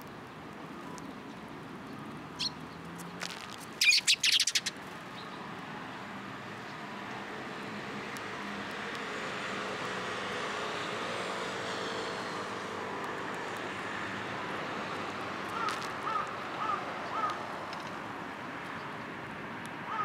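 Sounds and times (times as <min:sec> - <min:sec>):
short bird calls: 0:03.8 - 0:04.7.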